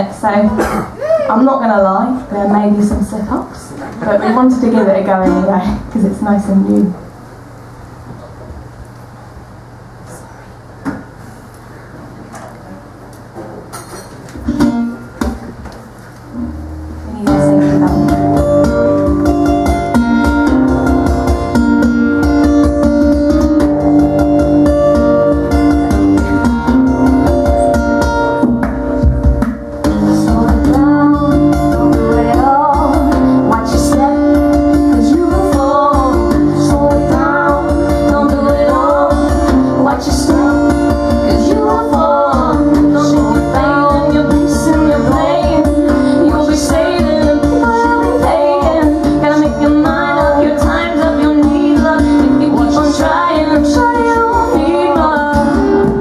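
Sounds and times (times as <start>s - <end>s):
acoustic guitar playing: 0.0s - 7.0s, 14.0s - 56.0s
woman singing: 1.3s - 7.0s, 17.1s - 19.0s, 29.9s - 56.0s.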